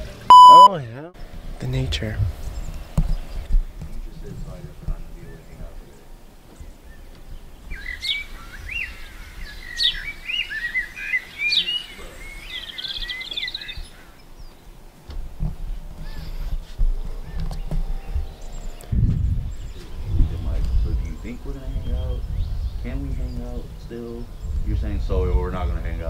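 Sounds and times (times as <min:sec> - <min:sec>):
songbird chirps and whistles: 0:00.3 - 0:00.7, 0:07.7 - 0:14.5.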